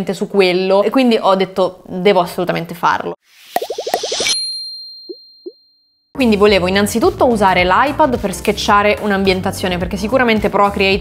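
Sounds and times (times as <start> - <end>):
short rising plops: 3.4 - 4.4.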